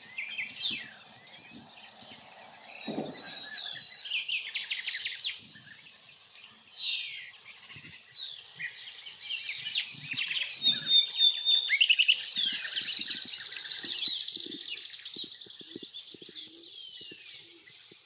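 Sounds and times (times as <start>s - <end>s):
birds calling rolling calls: 0.0s - 18.0s.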